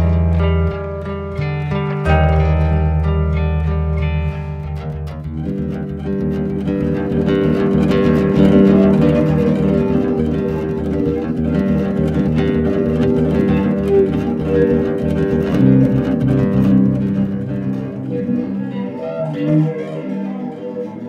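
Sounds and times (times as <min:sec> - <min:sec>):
acoustic guitar picking: 0:00.0 - 0:21.0.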